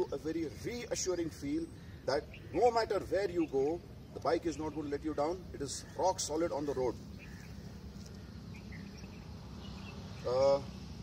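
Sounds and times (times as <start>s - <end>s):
faint bird chirps: 0.0s - 10.8s.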